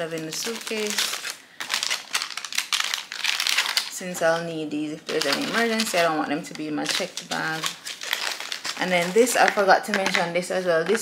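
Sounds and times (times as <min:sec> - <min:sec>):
plastic pouch crinkling: 0:00.0 - 0:11.0.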